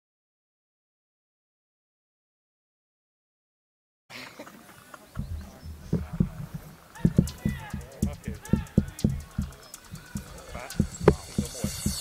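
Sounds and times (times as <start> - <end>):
low-pitched voices talking: 4.6 - 12.0.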